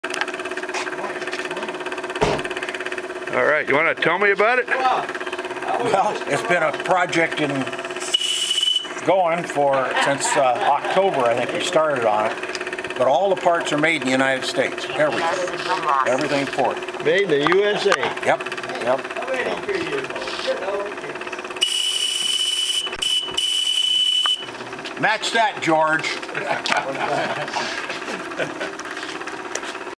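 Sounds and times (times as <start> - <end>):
model steam engine running: 0.1 - 30.0.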